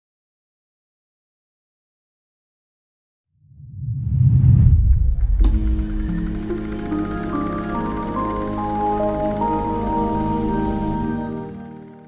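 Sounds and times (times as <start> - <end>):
deep rumbling swell: 3.5 - 6.8
held musical chord: 5.5 - 12.0.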